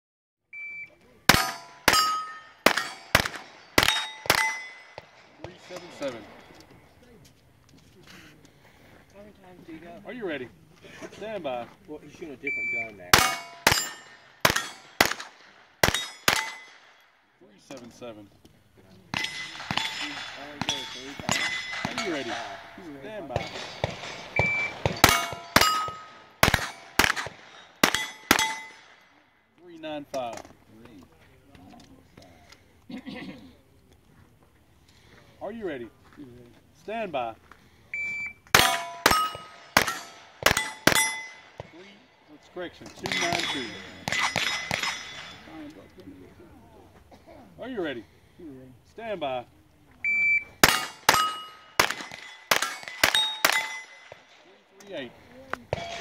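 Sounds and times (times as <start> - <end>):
shot timer beep: 0.5 - 1.0, 24.4 - 24.8, 38.0 - 38.5, 50.1 - 50.6
steel plate ringing: 1.3 - 5.0, 13.2 - 15.0, 15.9 - 16.8, 19.2 - 22.7, 24.4 - 26.9, 27.6 - 28.8, 38.6 - 41.5, 50.6 - 54.2
pistol shots: 1.3 - 6.4, 13.1 - 17.0, 19.1 - 29.0, 38.5 - 41.8, 43.0 - 45.5, 50.6 - 54.4.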